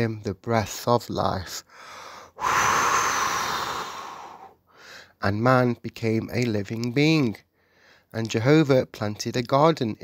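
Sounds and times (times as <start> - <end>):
long human breath: 1.7 - 5.2, 7.5 - 8.1.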